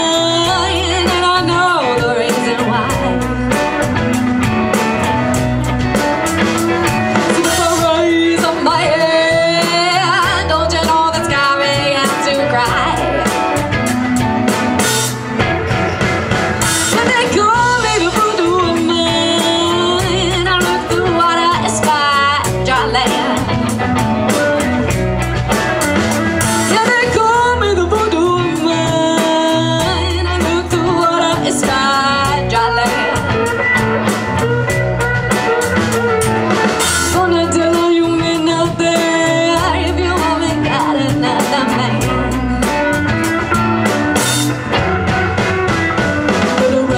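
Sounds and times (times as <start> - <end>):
drum kit: 0.0 - 46.9
electric guitars: 0.0 - 46.9.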